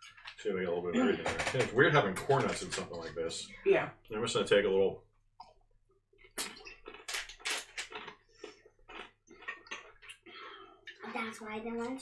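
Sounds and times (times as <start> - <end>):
person chewing crunchy food: 6.2 - 11.1.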